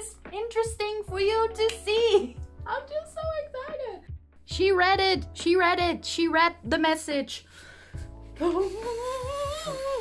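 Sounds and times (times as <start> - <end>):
low musical accompaniment: 0.0 - 10.0
wordless humming vocal: 8.4 - 10.0.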